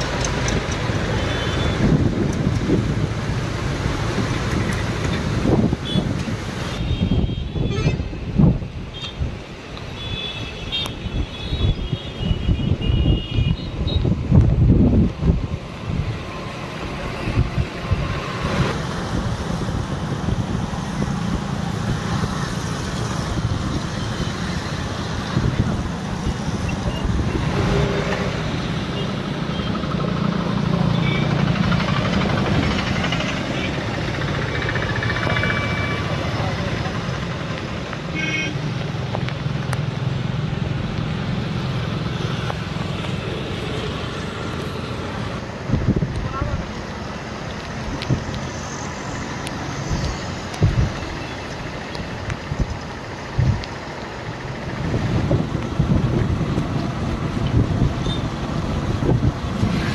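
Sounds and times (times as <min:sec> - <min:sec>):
rushing river: 0:00.0 - 0:12.5, 0:13.6 - 0:59.9
road traffic drone: 0:00.0 - 0:59.9
wind buffeting microphone: 0:01.7 - 0:09.5, 0:11.0 - 0:28.6, 0:45.1 - 0:48.5, 0:49.4 - 0:59.9.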